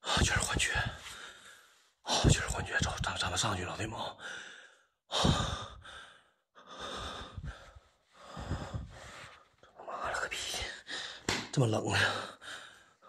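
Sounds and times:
man breathing heavily: 0:04.2 - 0:09.7, 0:12.0 - 0:13.0.

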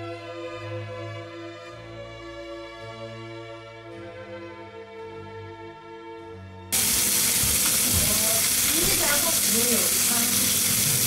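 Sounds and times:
soft background music: 0:00.0 - 0:10.7
food frying sizzle: 0:06.8 - 0:11.0.

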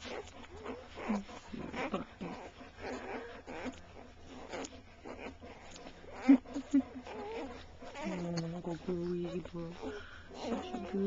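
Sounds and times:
puppies whimpering: 0:00.0 - 0:11.0.

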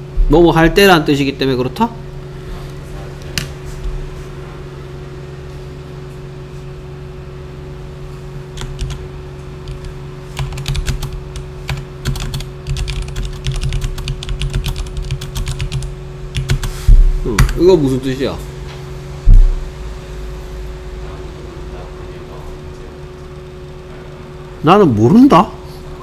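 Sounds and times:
steady low hum: 0:00.0 - 0:26.0
computer keyboard typing: 0:08.6 - 0:09.0, 0:09.6 - 0:16.8.

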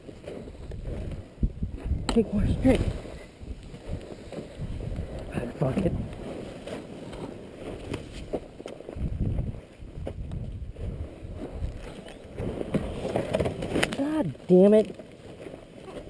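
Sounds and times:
low rumbling: 0:00.0 - 0:14.5
boots scraping on rocky dirt: 0:00.0 - 0:16.0.

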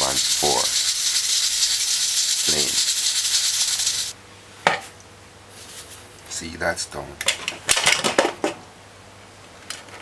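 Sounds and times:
pressure cooker steam hiss: 0:00.0 - 0:04.2.

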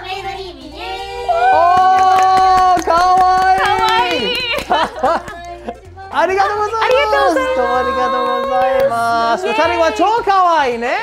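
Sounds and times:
quick hand clapping: 0:01.6 - 0:05.5.

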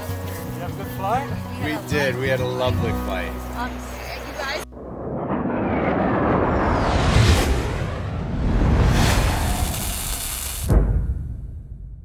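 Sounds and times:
sudden low hit: 0:04.7 - 0:09.9, 0:10.6 - 0:12.0
whoosh: 0:04.7 - 0:12.0.

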